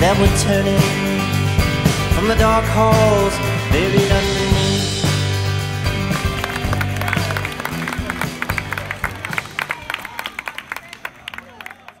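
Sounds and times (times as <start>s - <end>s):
rock band chord ringing: 0.0s - 9.6s
audience clapping: 5.8s - 12.0s.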